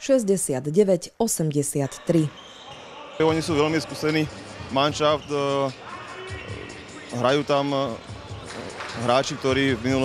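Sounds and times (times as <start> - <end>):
low din of sports hall: 2.2 - 10.0.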